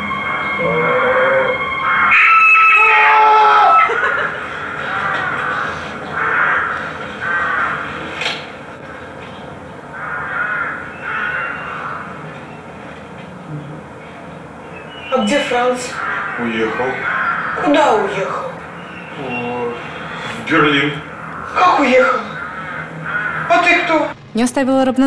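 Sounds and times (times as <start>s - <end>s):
crows cawing: 0.2s - 12.7s, 14.5s - 24.1s
loud held tone stepping down: 23.8s - 25.0s.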